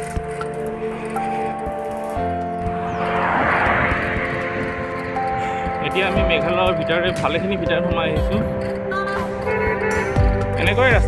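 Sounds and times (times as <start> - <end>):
car passing by: 2.2 - 7.0.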